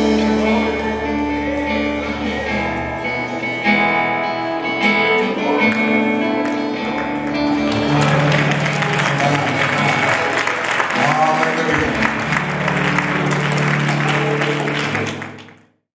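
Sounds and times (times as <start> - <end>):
sustained keyboard notes: 0.0 - 15.6
congregation applauding: 5.1 - 15.8.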